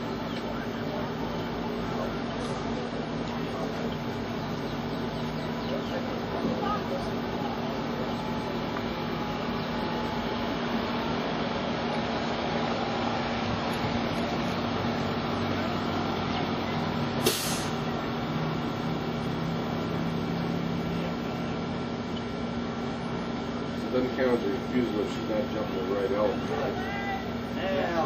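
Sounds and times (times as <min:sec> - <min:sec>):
faint steady hums: 0:00.0 - 0:28.0
brief sharp hiss: 0:17.2 - 0:17.8.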